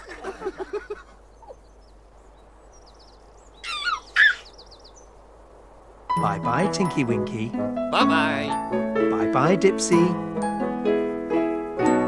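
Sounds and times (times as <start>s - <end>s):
birdsong chirping: 0.0s - 7.0s.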